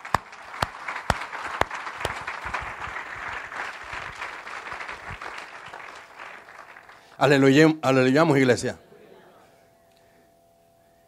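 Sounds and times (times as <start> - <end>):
congregation applauding: 0.0 - 7.8.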